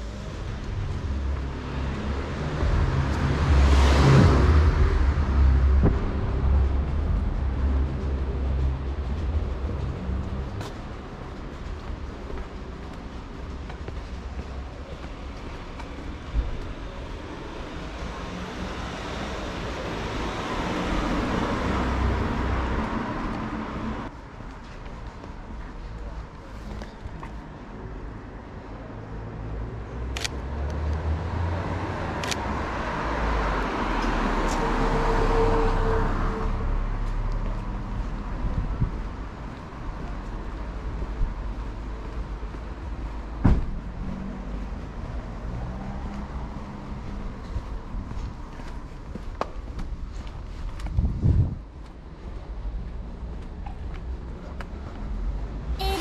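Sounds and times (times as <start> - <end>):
cars passing: 0.0 - 56.0
low traffic rumble: 0.0 - 56.0.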